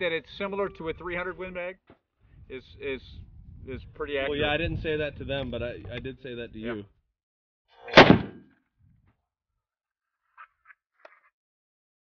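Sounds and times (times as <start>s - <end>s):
rifle shot: 7.9s - 8.5s.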